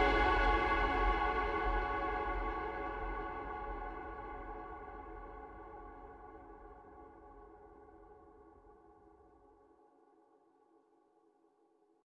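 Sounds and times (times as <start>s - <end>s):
ambient synth pad music: 0.0s - 8.2s.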